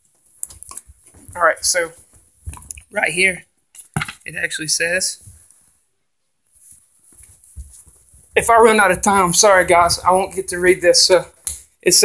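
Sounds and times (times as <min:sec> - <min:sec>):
handling rustles: 0:06.4 - 0:10.7.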